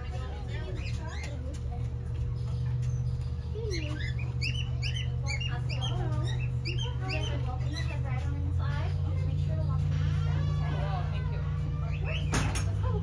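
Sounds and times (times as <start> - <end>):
small birds chirping: 0.0 - 13.0
steady low hum: 0.0 - 13.0.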